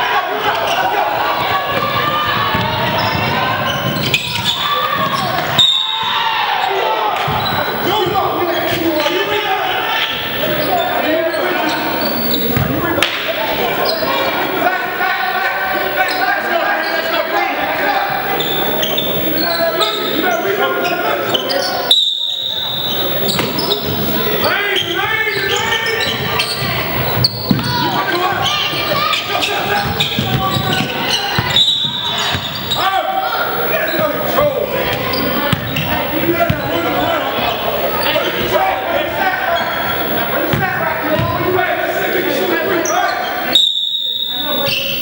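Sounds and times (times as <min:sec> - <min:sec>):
voices echoing in a gym: 0:00.0 - 0:45.0
basketball bouncing on hardwood: 0:27.2 - 0:27.7, 0:29.8 - 0:31.5.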